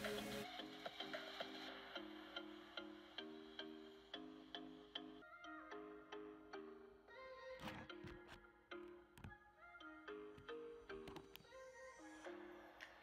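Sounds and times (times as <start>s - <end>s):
quiet instrumental music: 0.0s - 13.0s.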